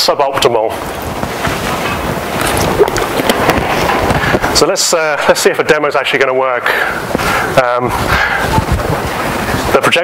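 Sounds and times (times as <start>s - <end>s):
steady rushing noise: 0.6s - 10.0s.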